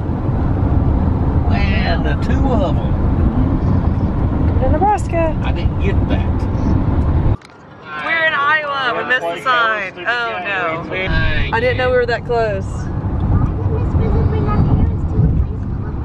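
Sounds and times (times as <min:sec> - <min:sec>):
road and engine rumble in a van: 0:00.0 - 0:16.0.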